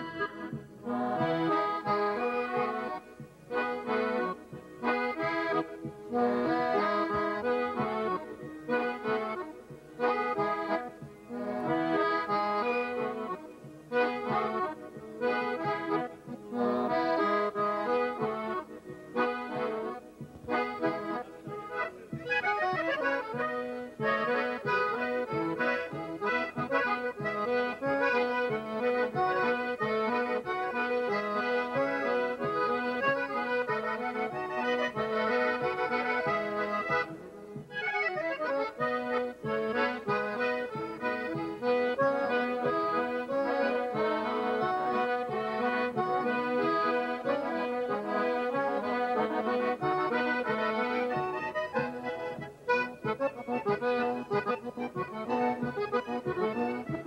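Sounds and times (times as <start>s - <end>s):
accordions playing: 0.0s - 57.0s.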